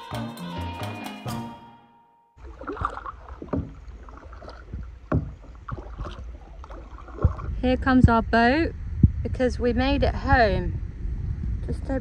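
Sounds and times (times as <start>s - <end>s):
paddle splashing in water: 2.4s - 7.6s
wind rumble on microphone: 2.8s - 12.0s.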